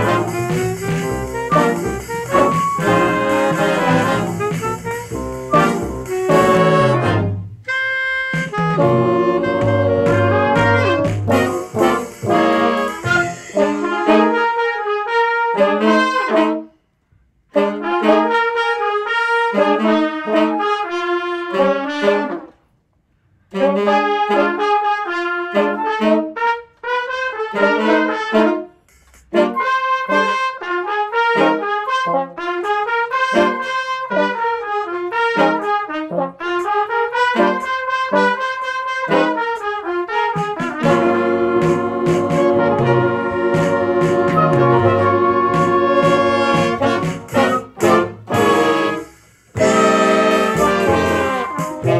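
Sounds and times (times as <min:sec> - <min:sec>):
jazz band playing: 0:00.0 - 0:16.6, 0:17.6 - 0:22.5, 0:23.6 - 0:51.9.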